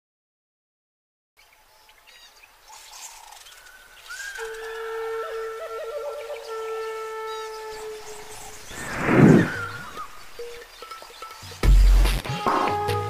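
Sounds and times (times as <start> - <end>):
birds chirping: 1.4 - 12.0
held flute-like notes: 4.2 - 10.6.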